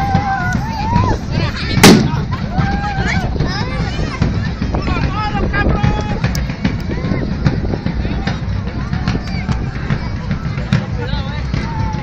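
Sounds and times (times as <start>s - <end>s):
people shouting: 0.0s - 4.2s, 11.0s - 12.0s
loud gunshot with echo: 1.8s - 2.2s.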